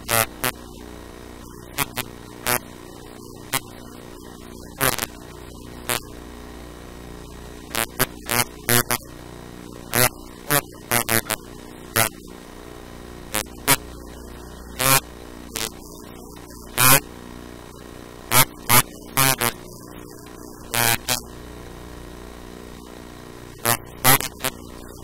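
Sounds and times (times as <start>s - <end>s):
steady electrical hum: 0.0s - 25.0s.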